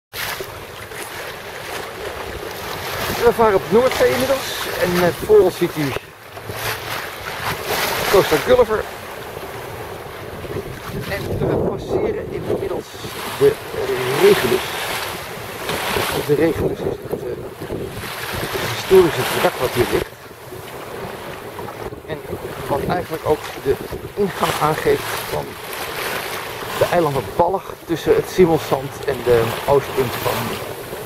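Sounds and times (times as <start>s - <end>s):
water splashing along boat hull: 0.1s - 31.0s
wind buffeting microphone: 0.4s - 31.0s.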